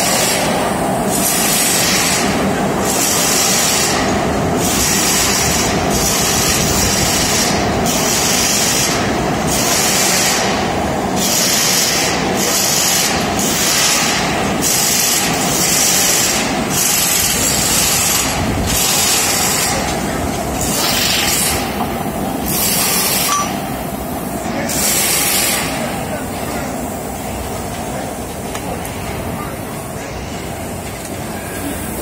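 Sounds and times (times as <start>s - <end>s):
factory machinery noise: 0.0s - 32.0s.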